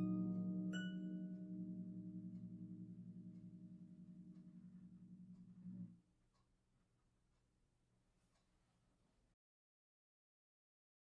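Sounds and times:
harp low notes ringing: 0:00.0 - 0:05.9.

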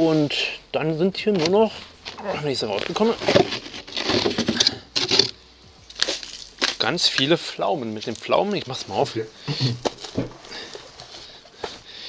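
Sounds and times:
frozen food containers rustling: 0:01.3 - 0:12.0.

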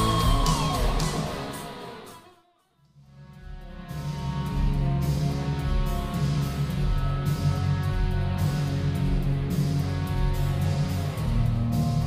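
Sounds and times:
loud rock music: 0:00.0 - 0:02.2, 0:03.7 - 0:12.0.

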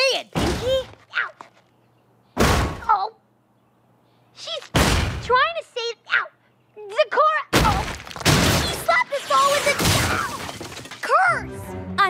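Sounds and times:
cartoon crashes: 0:07.6 - 0:11.2.

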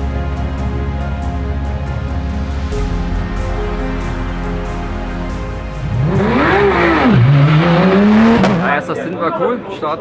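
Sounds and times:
race car engine revving: 0:05.8 - 0:08.8.

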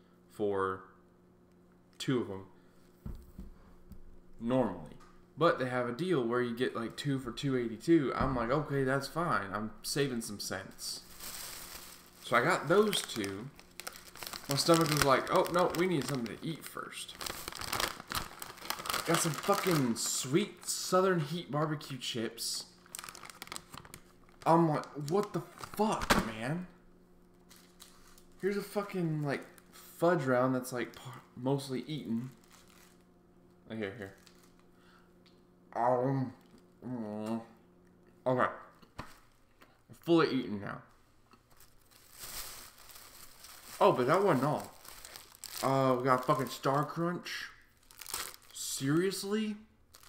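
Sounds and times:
foil chip bag crinkling: 0:10.8 - 0:21.0, 0:22.8 - 0:26.1, 0:27.4 - 0:30.0, 0:32.1 - 0:33.1, 0:34.0 - 0:34.7, 0:41.5 - 0:47.0, 0:47.7 - 0:50.0.

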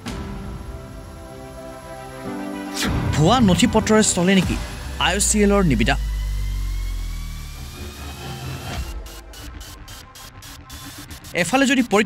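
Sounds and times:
low hum sliding down in pitch: 0:05.3 - 0:10.1.

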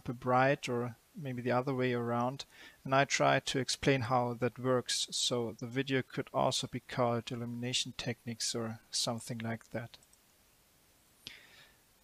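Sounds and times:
short breath: 0:02.5 - 0:02.9, 0:11.2 - 0:11.9.

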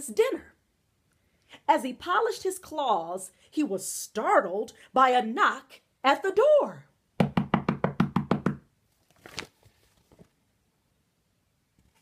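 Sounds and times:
rapid knocking on door: 0:07.2 - 0:08.6.

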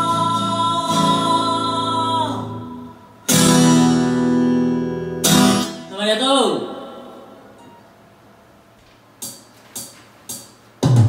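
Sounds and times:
acoustic guitar strumming chords: 0:00.0 - 0:06.0.

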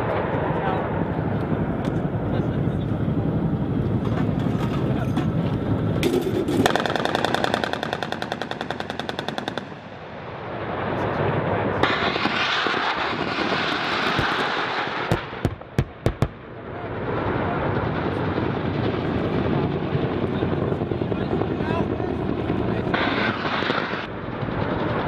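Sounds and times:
helicopter rotor and engine: 0:00.0 - 0:25.0
gunfire bangs: 0:06.0 - 0:09.9.

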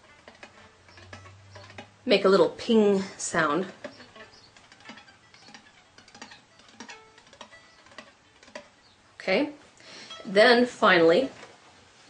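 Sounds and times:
violin strings tapped by fingers: 0:03.6 - 0:08.7.

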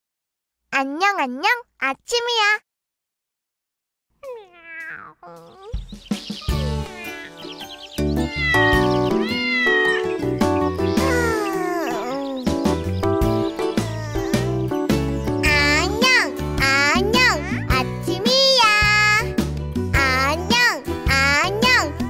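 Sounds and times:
cartoon kitten meowing: 0:04.2 - 0:05.8, 0:06.4 - 0:07.5, 0:08.2 - 0:12.5, 0:13.5 - 0:14.8
upbeat children's song music: 0:04.9 - 0:22.0.

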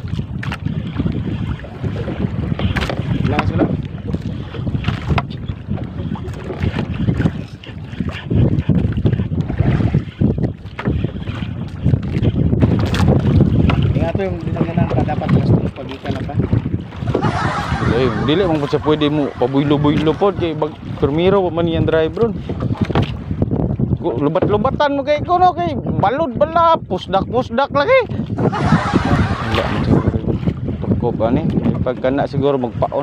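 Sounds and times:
waves washing against boat: 0:00.0 - 0:33.0
wind buffeting microphone: 0:00.0 - 0:33.0.

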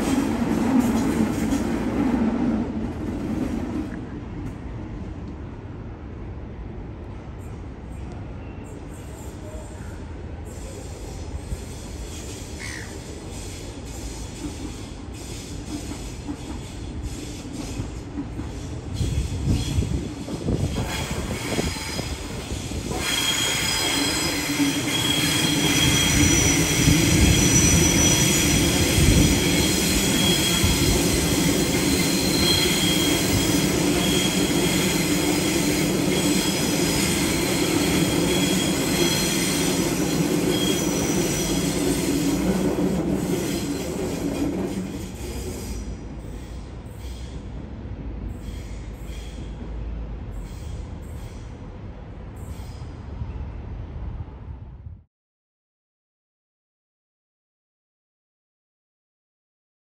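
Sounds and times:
train rumbling and knocking: 0:00.0 - 0:55.0
train low hum: 0:00.0 - 0:55.1
wheel squeal: 0:22.9 - 0:42.4.

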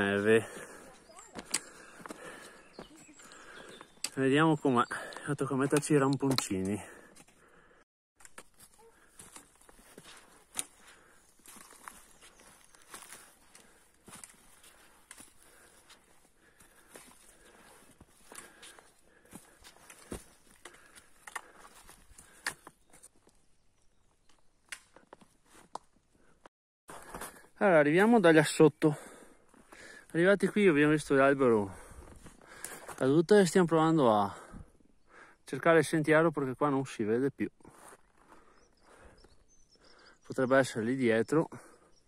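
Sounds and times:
footsteps crunching on snow and rocks: 0:00.0 - 0:04.0, 0:08.3 - 0:23.2, 0:25.0 - 0:26.0, 0:26.9 - 0:27.6, 0:37.6 - 0:38.6
trekking poles tapping: 0:00.9 - 0:04.2, 0:05.0 - 0:07.4, 0:08.2 - 0:11.8, 0:13.4 - 0:23.3.

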